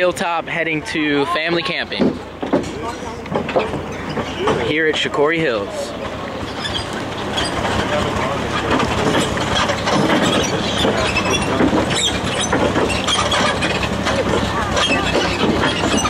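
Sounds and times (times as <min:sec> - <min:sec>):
tractor engine running: 0:00.0 - 0:16.0
wagon rattling and clattering: 0:00.0 - 0:16.0.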